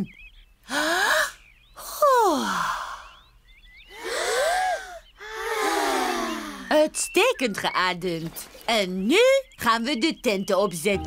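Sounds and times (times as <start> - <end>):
children breathing and sighing: 0.6 - 1.4, 3.9 - 6.8
woman's breathy sigh: 0.7 - 1.4, 3.9 - 6.7.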